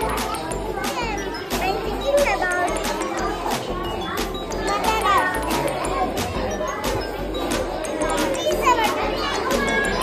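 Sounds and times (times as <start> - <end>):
background music with steady beat: 0.0 - 10.0
children's voices: 0.0 - 10.0.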